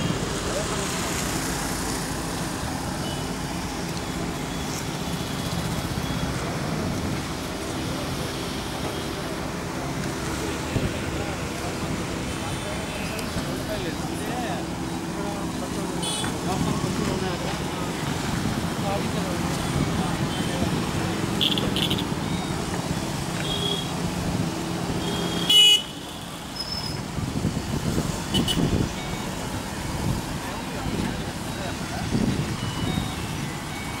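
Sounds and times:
road traffic rumble: 0.0s - 34.0s.

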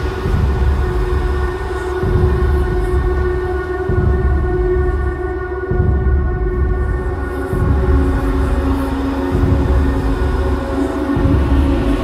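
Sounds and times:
dark suspenseful droning music: 0.0s - 12.0s.

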